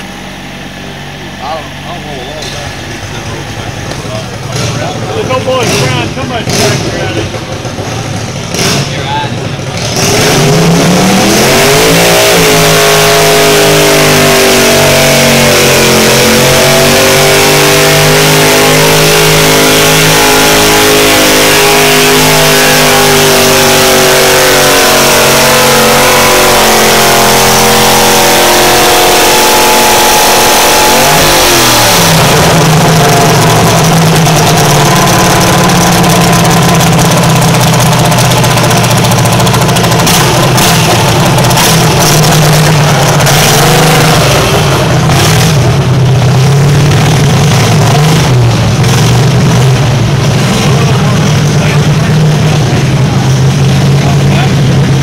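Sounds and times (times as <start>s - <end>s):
garden tractor engine at high throttle: 0.0s - 55.0s.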